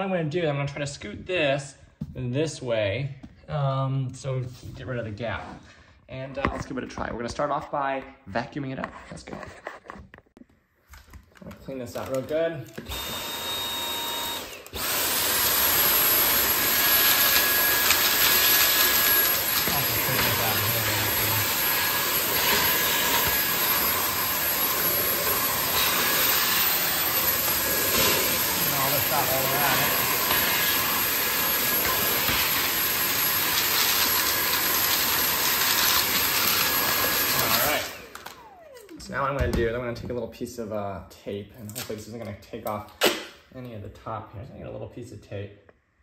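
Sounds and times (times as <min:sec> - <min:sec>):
stick vacuum running: 0:12.7 - 0:39.5.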